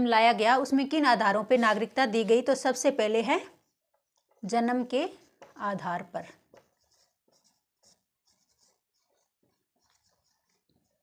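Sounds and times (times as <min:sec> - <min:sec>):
marker scratching on whiteboard: 0:01.0 - 0:11.0.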